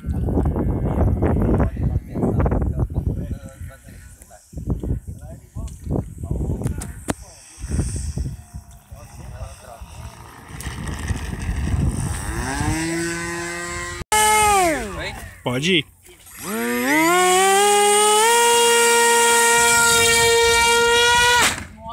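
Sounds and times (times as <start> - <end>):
wind buffeting microphone: 0.0 - 15.4
model airplane motor whine: 7.1 - 14.9, 16.2 - 21.7.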